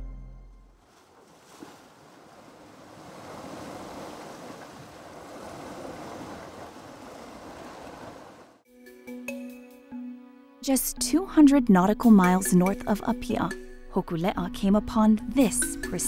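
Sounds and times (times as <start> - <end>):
wind: 0.6 - 8.6
waves washing: 0.8 - 8.6.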